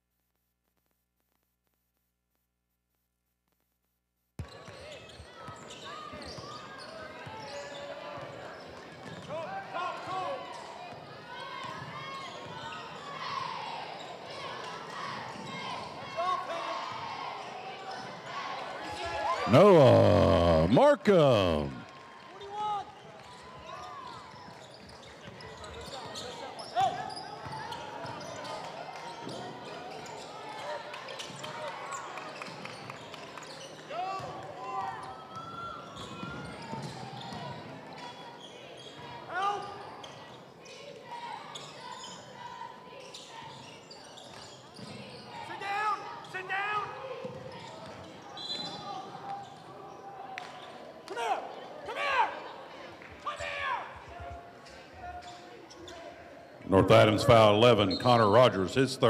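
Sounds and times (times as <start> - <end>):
crowd talking and calling out: 19.5 - 21.8.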